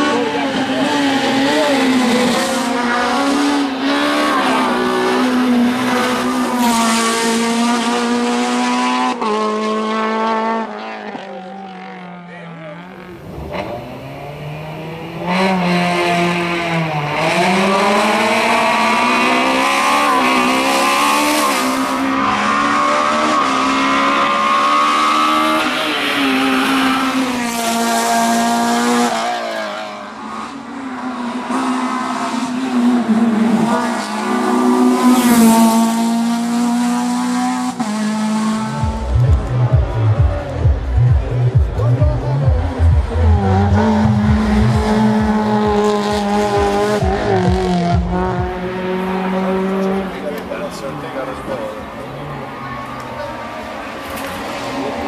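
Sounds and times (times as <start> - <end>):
car engine accelerating hard: 0.0 - 55.0.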